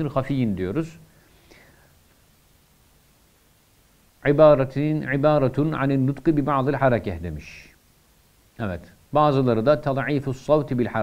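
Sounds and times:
faint breath-like hiss: 1.0 - 2.4.

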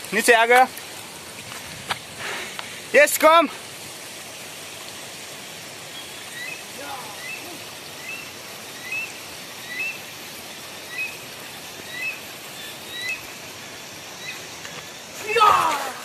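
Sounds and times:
running water hissing: 0.0 - 16.0
bird chirping: 5.9 - 10.1, 10.8 - 11.2, 11.8 - 13.4, 14.1 - 15.1.

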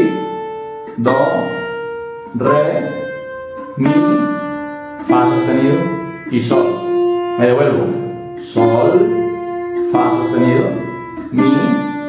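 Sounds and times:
plucked string notes: 0.0 - 12.0.

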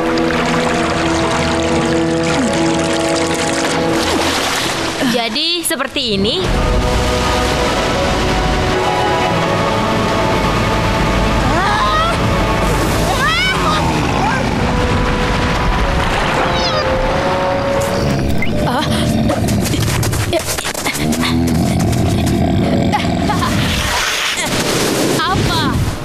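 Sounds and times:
water wave crashing: 0.0 - 5.0, 6.5 - 18.3, 23.4 - 26.0
cartoon music: 8.7 - 14.5, 15.7 - 18.8.

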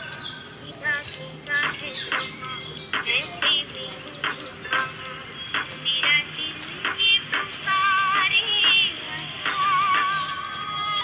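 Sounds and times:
high female vocal: 0.1 - 4.8.

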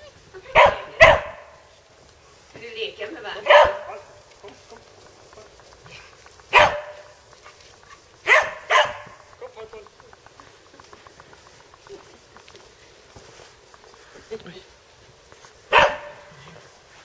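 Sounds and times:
dog barking: 0.5 - 1.6, 3.4 - 4.2, 6.5 - 9.2, 15.7 - 16.5.

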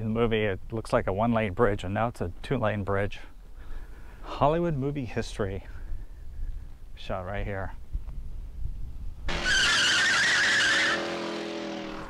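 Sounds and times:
car tyres screeching: 9.3 - 12.0.

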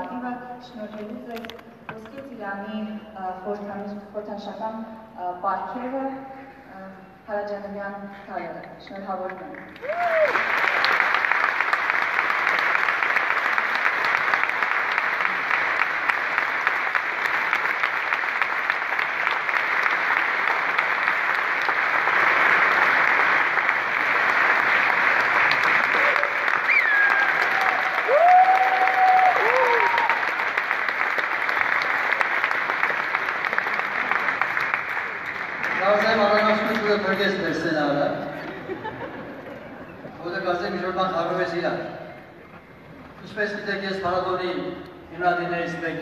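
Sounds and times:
audience applauding: 9.5 - 37.6.

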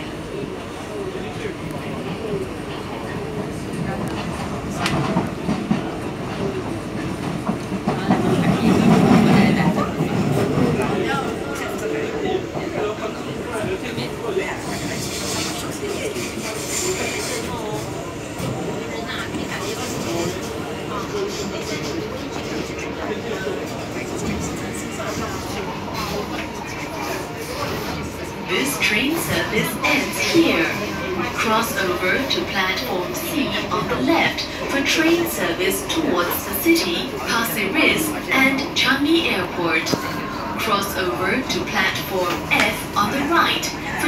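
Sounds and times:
train wheels rumbling on rail: 0.0 - 44.0.

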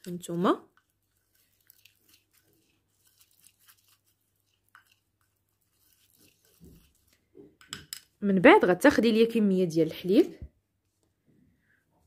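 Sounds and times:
spoon stirring paste in bowl: 0.0 - 8.3.

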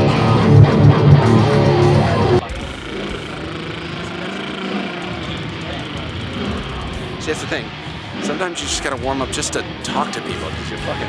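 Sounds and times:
band playing distorted guitar: 0.0 - 11.0
background chatter of people: 1.8 - 11.0.

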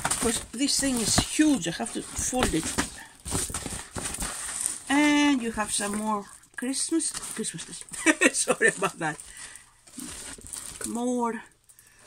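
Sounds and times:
plastic film crinkling: 0.0 - 11.6.

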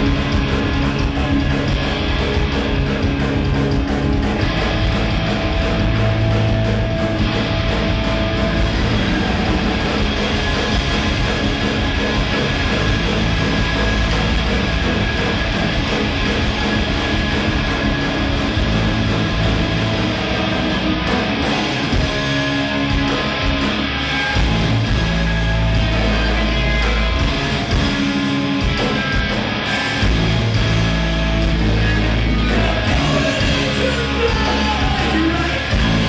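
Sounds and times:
electric guitars: 0.0 - 36.0
rock band playing live: 0.0 - 36.0.

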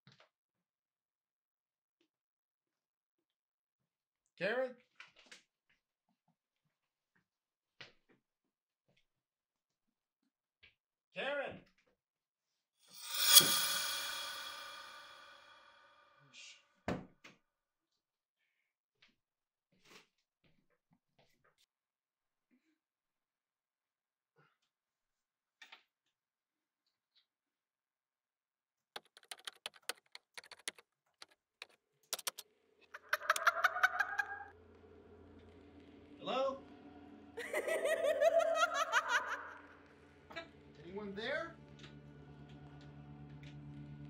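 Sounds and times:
high pulsing sound: 13.0 - 15.6
low hum: 13.0 - 15.7
laptop keyboard typing: 29.0 - 30.8, 32.2 - 32.4.

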